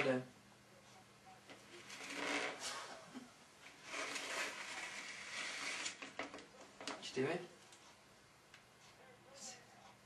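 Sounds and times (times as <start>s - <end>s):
cat scratching plastic basket: 1.8s - 2.8s, 3.8s - 7.1s.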